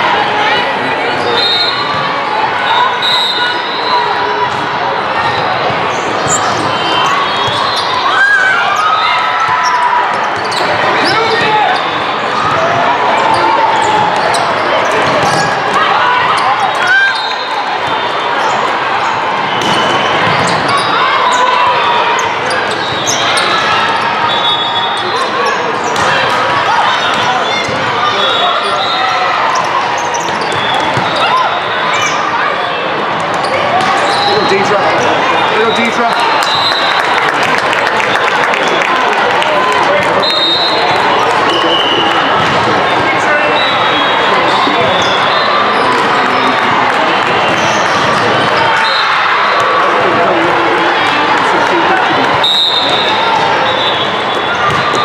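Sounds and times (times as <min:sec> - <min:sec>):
voices chattering and calling out: 0:00.0 - 0:55.0.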